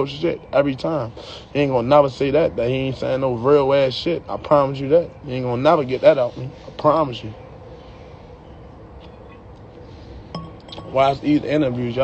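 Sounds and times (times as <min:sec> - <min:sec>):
glass bottle clinking: 0:10.3 - 0:11.2.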